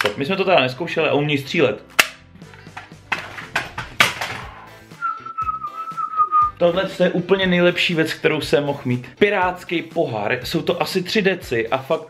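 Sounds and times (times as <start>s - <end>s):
toy pistol snapping: 1.9s - 2.2s
whistled note: 4.9s - 6.6s.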